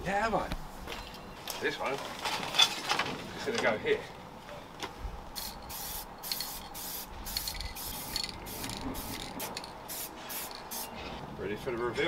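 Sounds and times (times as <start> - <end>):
spray can hissing: 5.4 - 11.0.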